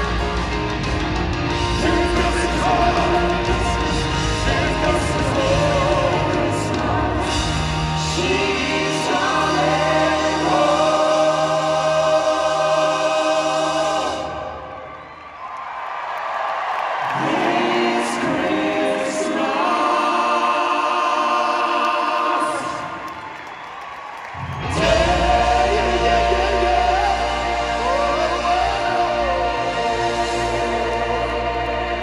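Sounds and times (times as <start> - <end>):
live band with deep bass: 0.0 - 10.7
choir singing sustained chords: 0.0 - 15.1, 17.1 - 23.0, 24.6 - 32.0.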